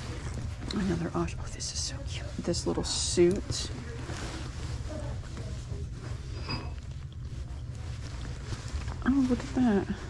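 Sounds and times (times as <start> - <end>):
fabric rustling: 0.0 - 10.0.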